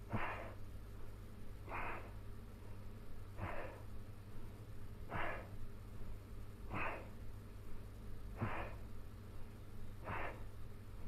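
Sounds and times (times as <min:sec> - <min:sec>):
faint low hum: 0:00.0 - 0:11.0
man exhaling forcefully: 0:08.4 - 0:08.8, 0:10.0 - 0:10.4.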